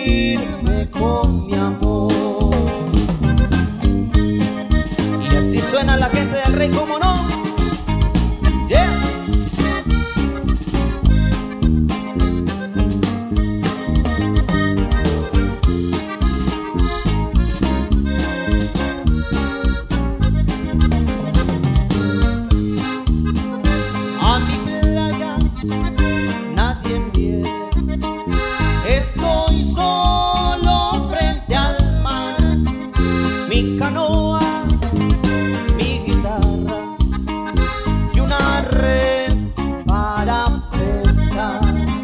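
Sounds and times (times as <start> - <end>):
accordion band with drums: 0.0 - 42.0.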